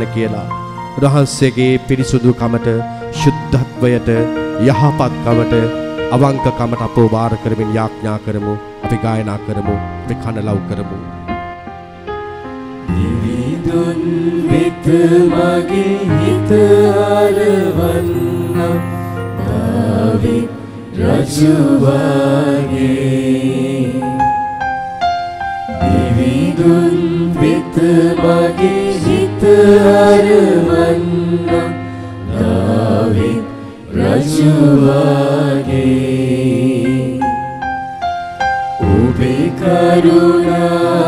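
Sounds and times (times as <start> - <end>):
hymn sung with instruments: 0.0 - 10.6, 12.7 - 24.7, 25.7 - 37.8, 38.6 - 41.0
sustained accompaniment: 11.6 - 41.0.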